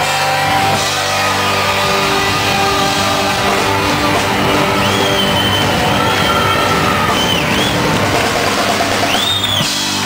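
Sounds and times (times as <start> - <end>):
electric guitars: 0.0 - 10.0
live rock band playing: 0.0 - 10.0.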